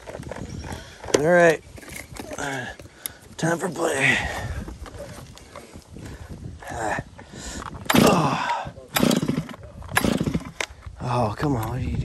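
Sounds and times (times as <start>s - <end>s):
chainsaw engine firing briefly: 7.9s - 10.6s
chainsaw cord pull: 7.9s - 10.8s.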